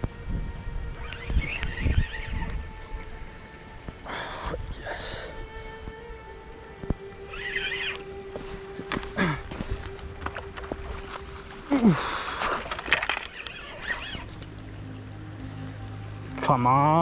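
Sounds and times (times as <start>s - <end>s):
spinning reel being wound: 1.0s - 2.6s, 7.3s - 8.0s, 13.0s - 14.4s.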